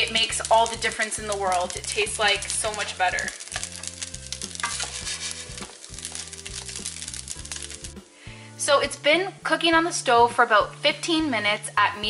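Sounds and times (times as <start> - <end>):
tofu sizzling in a pan: 0.0 - 8.7
background music with bass line: 0.0 - 12.0.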